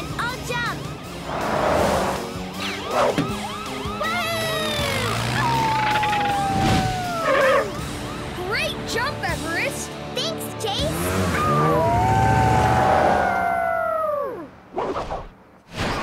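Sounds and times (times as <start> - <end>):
cartoon background music: 0.0 - 12.4
vehicle sound effects: 0.1 - 13.4.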